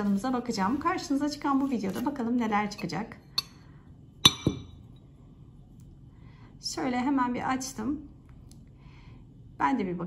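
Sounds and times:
porcelain cup clinking on saucer: 4.2 - 4.8.

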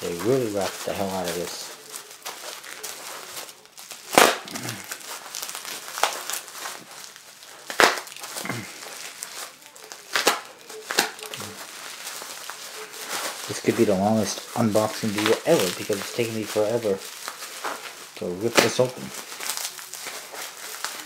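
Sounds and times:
bubble wrap crinkling and tearing: 0.0 - 21.0
bubble wrap snaps: 0.0 - 21.0.

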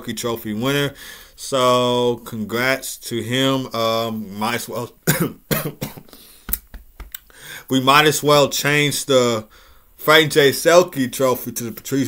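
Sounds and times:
man coughing: 5.0 - 6.2.

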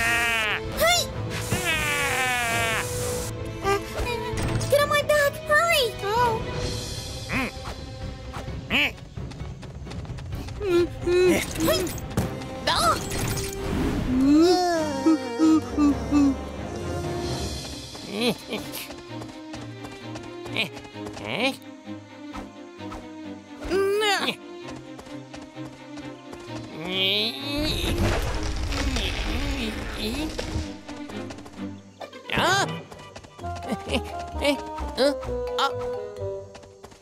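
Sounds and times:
background music: 0.0 - 37.0
squawking creature calls: 1.4 - 3.2.

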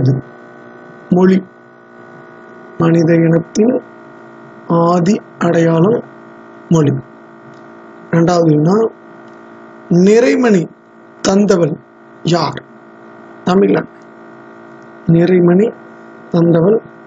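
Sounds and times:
person speaking: 0.0 - 12.7, 13.4 - 14.0, 15.0 - 16.9
steady electrical hum: 0.0 - 17.0.

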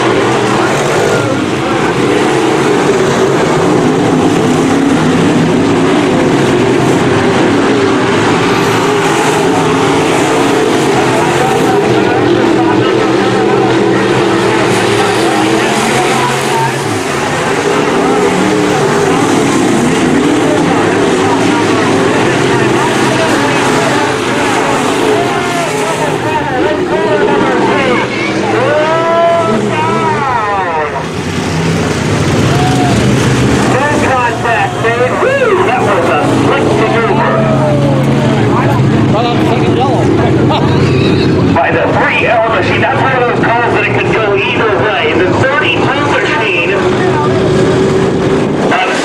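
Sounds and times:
race car engines: 0.0 - 49.0.

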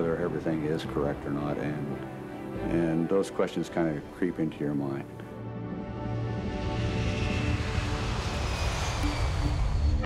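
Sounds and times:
background music: 0.0 - 10.0
jet engines roaring in afterburner: 5.9 - 10.0.

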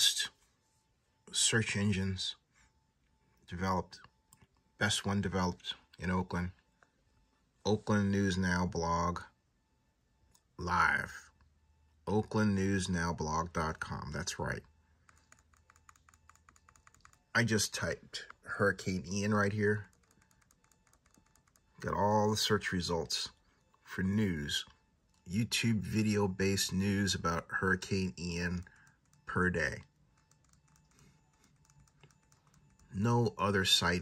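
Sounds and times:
fast typing on keyboard: 15.0 - 17.6, 19.1 - 21.9, 28.5 - 33.4.

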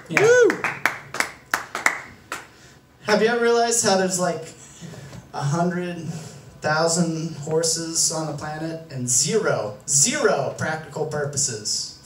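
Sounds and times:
audience clapping: 0.0 - 2.6.

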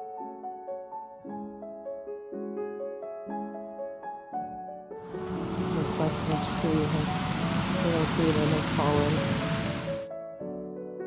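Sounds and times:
rain hissing: 5.1 - 10.1.

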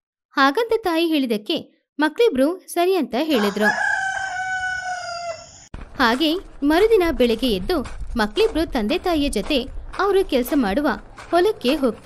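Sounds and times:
rooster crowing: 3.3 - 5.7.

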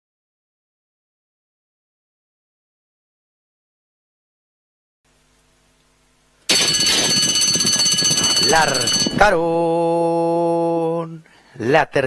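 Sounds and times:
busy clatter of horses starting: 6.5 - 9.4
starting gate bell ringing: 6.5 - 9.7.

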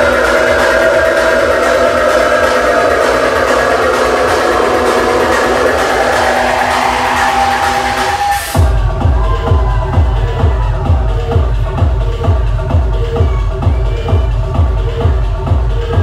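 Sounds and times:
electronic dance music: 0.0 - 16.0
held synth chords: 0.0 - 16.0
kick drum and bass: 0.0 - 16.0.

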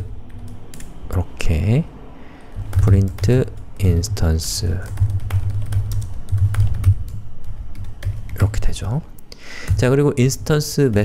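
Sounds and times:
keyboard typing: 0.0 - 1.0, 2.4 - 8.8, 9.6 - 11.0.

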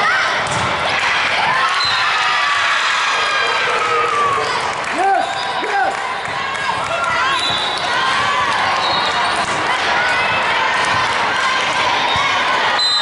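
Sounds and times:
voices in echoing hall: 0.0 - 13.0.

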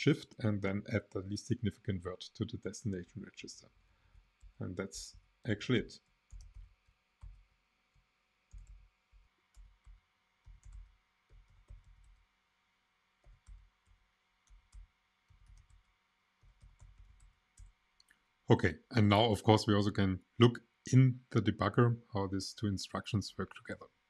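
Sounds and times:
keyboard typing: 6.3 - 7.4, 8.5 - 12.2, 13.2 - 17.7.

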